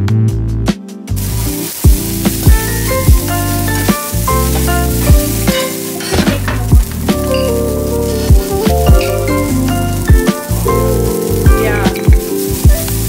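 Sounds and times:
background music with steady beat: 0.0 - 13.0
vegetables sizzling in a frying pan: 1.1 - 13.0.

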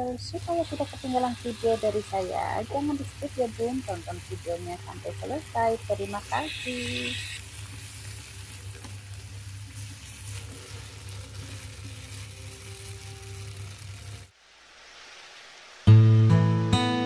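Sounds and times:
steady low hum: 0.0 - 16.0
food sizzling in a pan: 0.0 - 16.3
wooden spatula stirring: 5.0 - 14.2.

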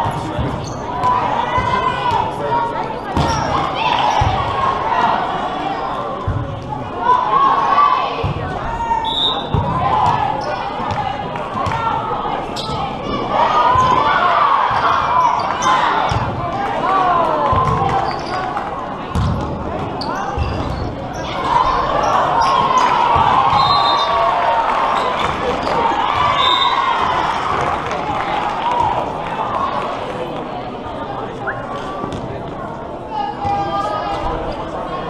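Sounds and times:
players and spectators calling: 0.0 - 35.0
volleyball thuds: 19.1 - 20.7.

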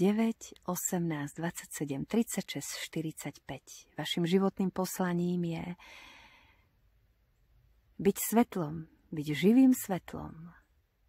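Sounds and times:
soft breath: 5.8 - 6.9.

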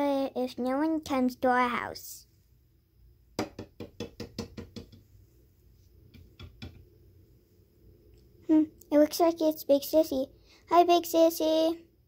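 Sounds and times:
plastic toys tapping on glass: 3.4 - 5.0.

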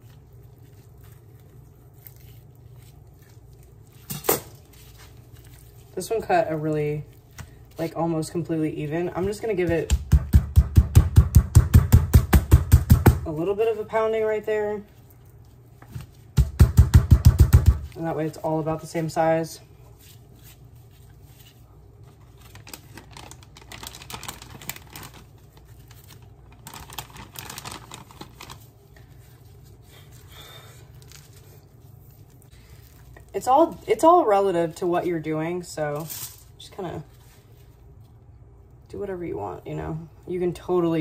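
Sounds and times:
plastic wrap crinkling: 0.0 - 9.7, 19.8 - 38.9
meat being pounded flat: 9.2 - 13.3, 15.9 - 18.0.

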